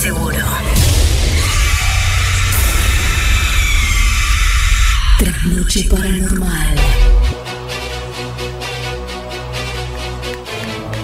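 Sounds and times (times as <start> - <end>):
deep rumble: 0.0 - 7.4.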